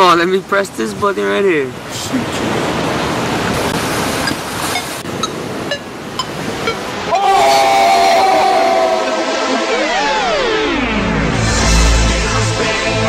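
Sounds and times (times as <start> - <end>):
short high blips: 4.2 - 7.0
upward sweeping tone: 4.2 - 12.2
synthesized chord: 8.5 - 13.0.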